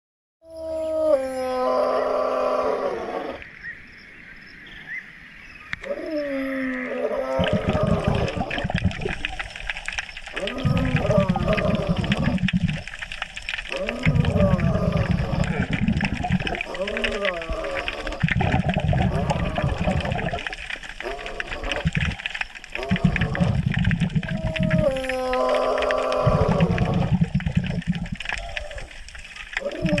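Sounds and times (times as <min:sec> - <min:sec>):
low crackling water noise: 0:00.5 - 0:30.0
sea lion calling: 0:05.8 - 0:30.0
wordless vocal sounds: 0:10.3 - 0:12.9, 0:13.6 - 0:28.9.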